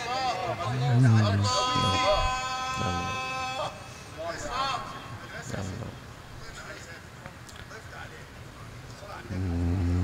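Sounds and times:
man reciting melodically: 0.0 - 6.2.

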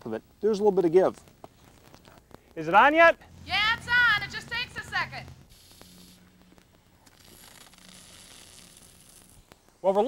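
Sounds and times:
sprinkler water spraying hiss: 4.1 - 10.0.

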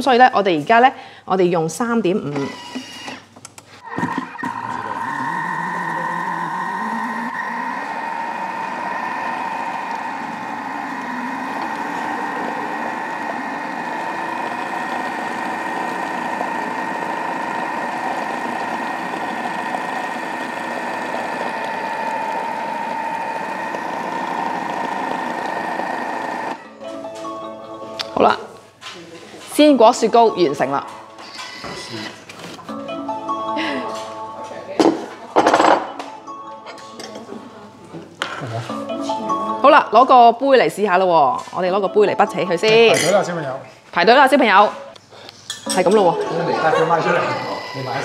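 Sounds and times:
kitchen mixer motor whine: 3.8 - 26.6, 31.2 - 32.2, 46.1 - 48.0.

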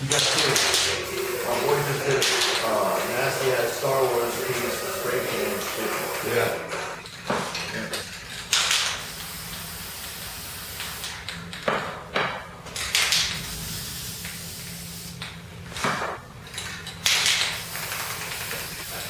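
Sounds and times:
spray paint can hissing: 0.1 - 6.7, 8.6 - 11.2, 12.9 - 15.2, 17.0 - 19.0.

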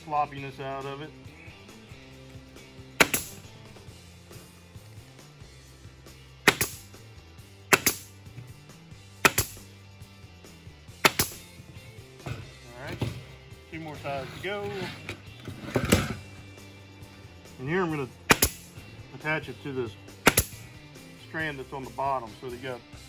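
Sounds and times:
pneumatic staple gun firing: 6.4 - 6.8, 7.7 - 8.1, 9.2 - 9.6, 11.0 - 11.4, 18.3 - 18.7, 20.2 - 20.6.

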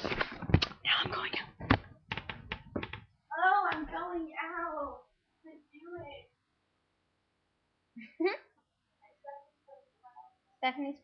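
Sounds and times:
sharp clicks and knocks: 0.0 - 4.0
person whispering into microphone: 0.6 - 1.8.

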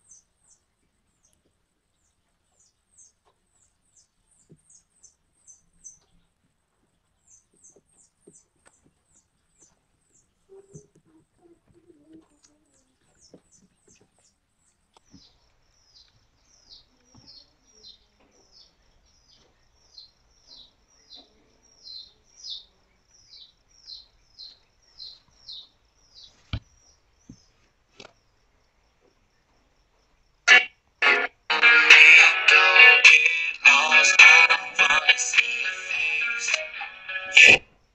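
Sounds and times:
small bird chirping: 0.0 - 30.7.

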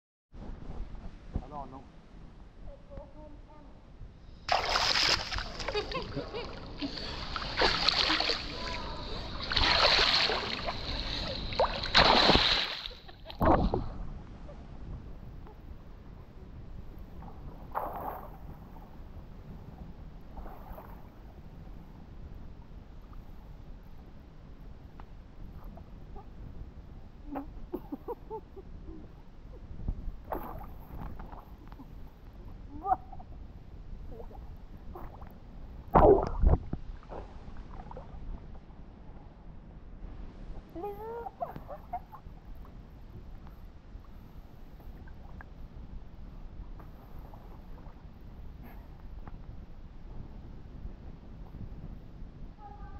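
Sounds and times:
rumble of moving water: 0.4 - 52.9
pool water splashing: 4.5 - 13.4.

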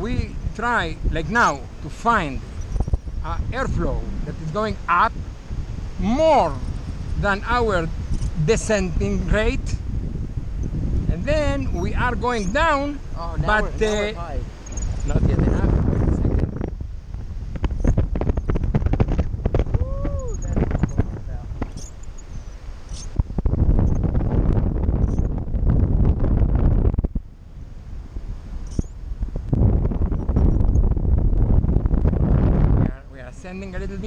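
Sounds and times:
wind rushing over microphone: 0.0 - 34.0.

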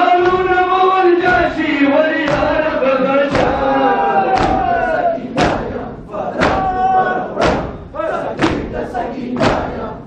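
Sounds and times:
crowd slapping chests: 0.0 - 10.0
men chanting: 0.0 - 10.0.

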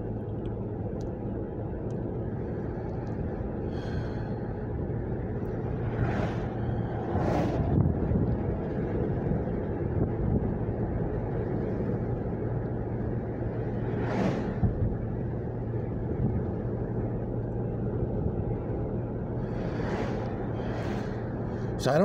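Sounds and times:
car road and engine rumble: 0.0 - 22.0
brief whooshes: 19.5 - 21.2.

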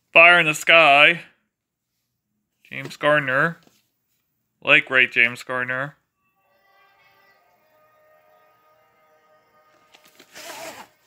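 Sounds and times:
faint background music: 4.6 - 11.0.

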